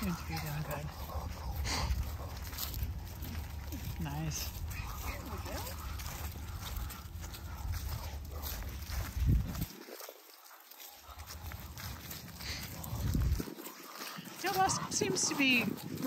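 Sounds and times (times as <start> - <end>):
wind buffeting microphone: 0.0 - 10.2, 11.1 - 16.0
footsteps rustling through dry grass: 0.0 - 16.0.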